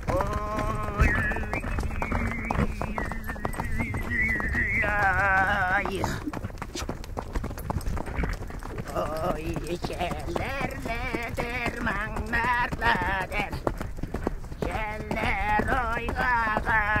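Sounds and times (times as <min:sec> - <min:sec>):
throat singing: 0:00.0 - 0:06.3, 0:08.8 - 0:13.6, 0:14.6 - 0:17.0
horse hooves clip-clopping: 0:00.0 - 0:17.0.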